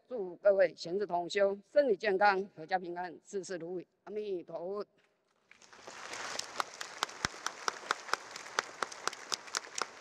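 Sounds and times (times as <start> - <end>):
audience applauding: 6.3 - 10.0
loud single claps: 6.4 - 10.0.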